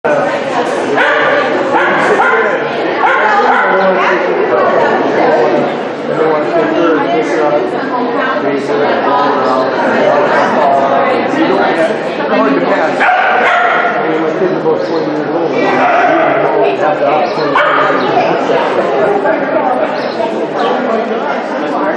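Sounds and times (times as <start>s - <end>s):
people talking: 0.0s - 21.9s
dog barking: 1.0s - 4.3s, 13.0s - 14.0s, 15.8s - 16.4s, 17.6s - 18.0s.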